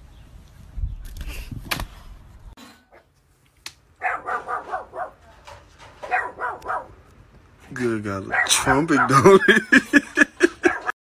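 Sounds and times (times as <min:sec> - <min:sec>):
dog yipping barks: 0:04.0 - 0:05.2, 0:06.0 - 0:07.0, 0:08.3 - 0:09.2, 0:10.6 - 0:10.9.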